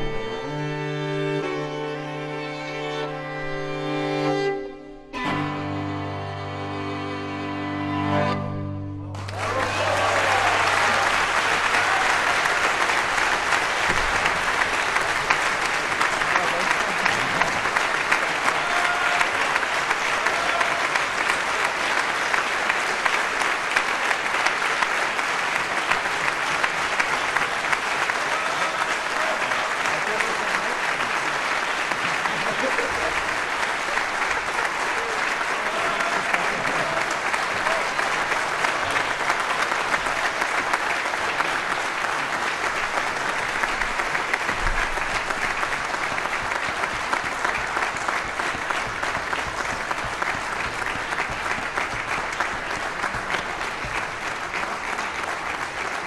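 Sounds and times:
audience applauding: 0.0 - 0.7, 9.1 - 56.0.

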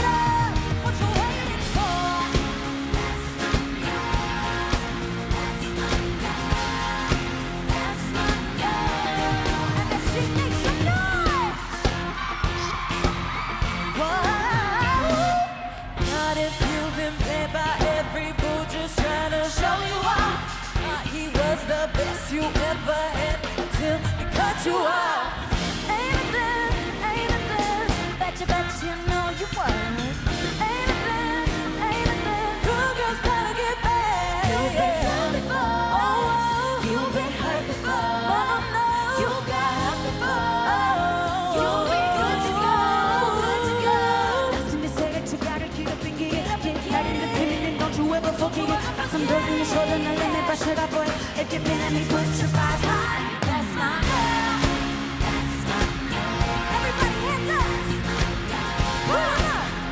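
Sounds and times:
female vocal group singing: 0.0 - 12.7, 13.6 - 59.9
bass line: 0.0 - 24.7, 25.5 - 59.9
band with drums: 0.0 - 24.8, 25.4 - 35.6, 39.2 - 59.9.

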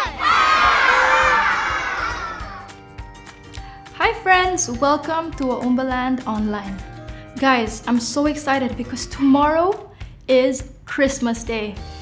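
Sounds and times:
children cheering and shouting: 0.0 - 2.8.

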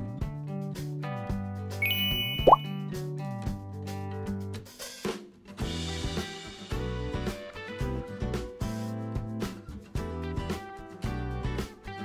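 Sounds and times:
short rising bloop: 1.8 - 2.7
sparkly chime: 1.8 - 2.7.

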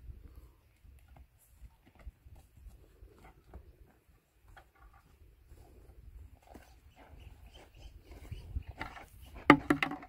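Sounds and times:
soft horse noises: 0.0 - 9.5.

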